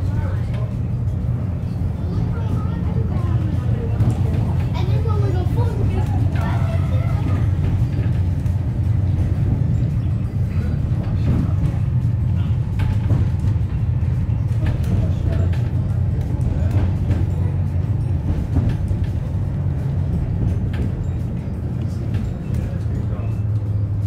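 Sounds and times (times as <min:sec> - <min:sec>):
wheels rumbling on rails: 0:00.0 - 0:24.0.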